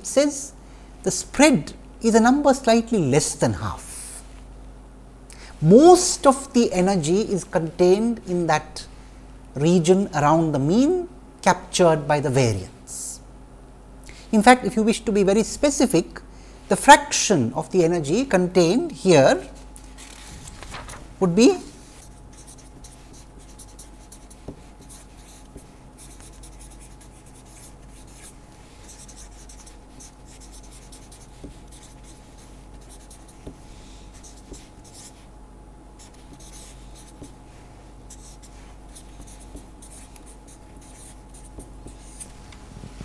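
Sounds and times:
faint steady hum: 0:00.0 - 0:43.0
felt-tip marker writing on paper: 0:21.7 - 0:35.3, 0:36.0 - 0:42.3.

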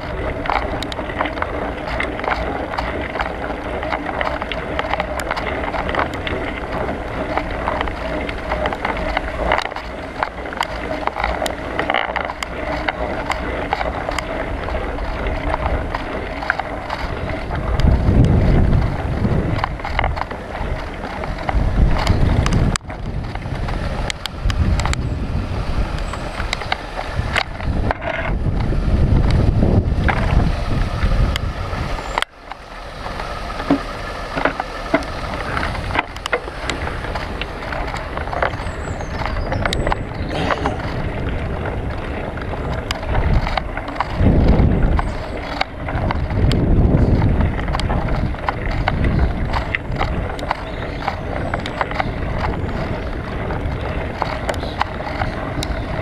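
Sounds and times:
bike rattles and knocks: 0:00.0 - 0:56.0
tyres rushing on rough path: 0:00.0 - 0:56.0
wind buffeting microphone: 0:00.0 - 0:56.0.

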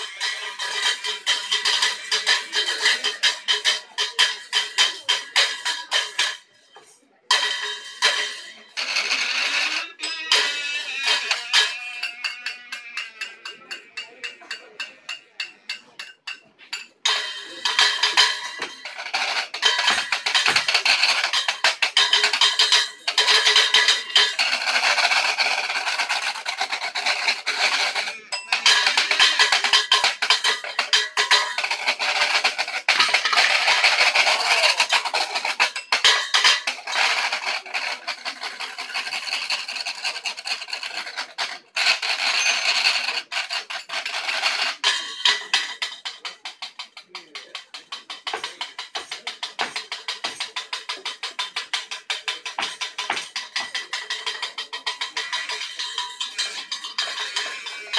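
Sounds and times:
washboard taps and scraping: 0:00.0 - 0:57.9.

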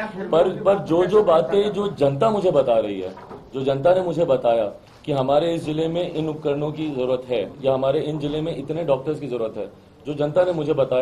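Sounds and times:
man speaking into microphones: 0:00.0 - 0:11.0.

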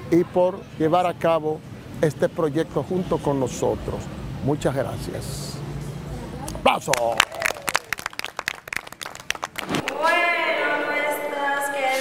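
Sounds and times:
children clapping: 0:06.9 - 0:10.1.

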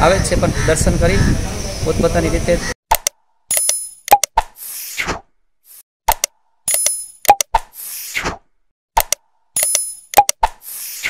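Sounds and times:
sharp clicks and pops: 0:02.9 - 0:04.6, 0:06.1 - 0:07.8, 0:09.0 - 0:10.8.

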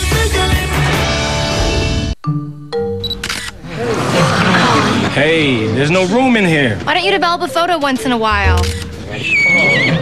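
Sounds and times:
camera shutter click: 0:03.1 - 0:03.6, 0:08.6 - 0:09.0.

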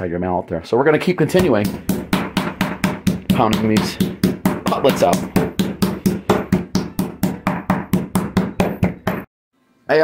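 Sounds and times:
meat mallet pounding meat: 0:01.3 - 0:09.3.

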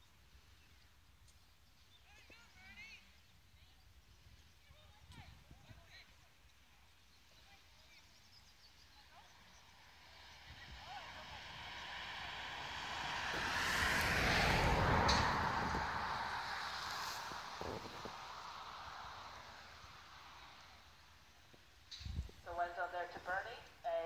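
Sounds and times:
vehicle passing: 0:09.3 - 0:21.3.

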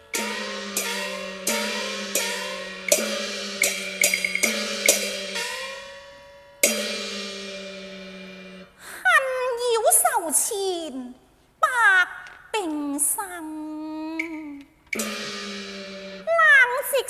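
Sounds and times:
gongs and cymbals struck: 0:00.0 - 0:08.8, 0:14.9 - 0:16.6.

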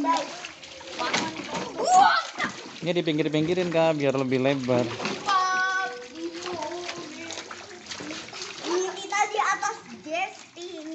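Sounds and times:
children's voices: 0:00.0 - 0:02.7, 0:05.2 - 0:10.9
water splashing in a pool: 0:00.0 - 0:10.9.

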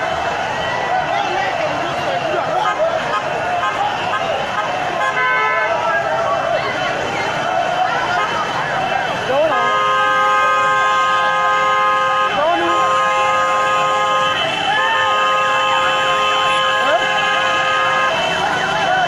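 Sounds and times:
crowd chatter: 0:00.0 - 0:19.0
vehicle horns blasting: 0:02.3 - 0:06.0, 0:08.1 - 0:19.0.

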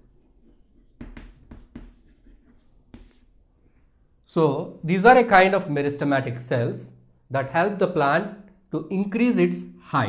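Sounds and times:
chalk scratching on chalkboard: 0:00.0 - 0:03.4.

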